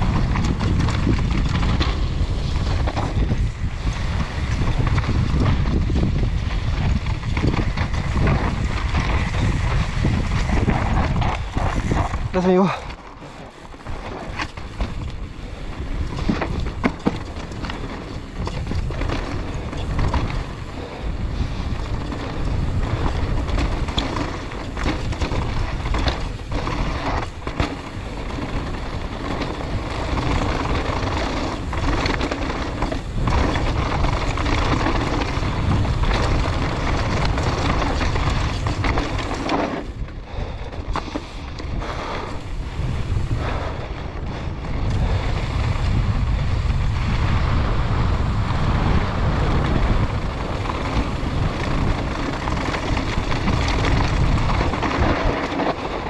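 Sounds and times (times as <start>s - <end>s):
tyres crunching over gravel: 0.0s - 43.5s, 49.2s - 56.0s
bike rattling and knocking: 0.0s - 56.0s
wind buffeting microphone: 0.0s - 56.0s.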